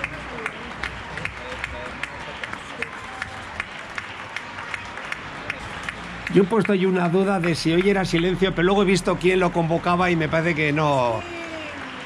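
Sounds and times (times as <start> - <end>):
distant hand clapping: 0.0 - 8.4.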